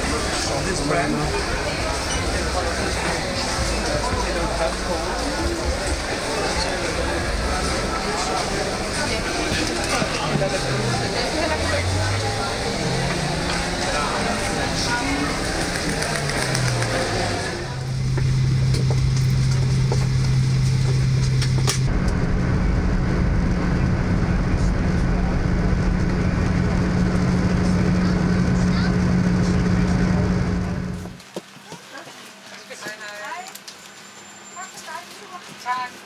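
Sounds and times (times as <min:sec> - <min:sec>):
crowd chatter: 0:00.0 - 0:33.2
jet engine cabin drone: 0:00.1 - 0:31.2.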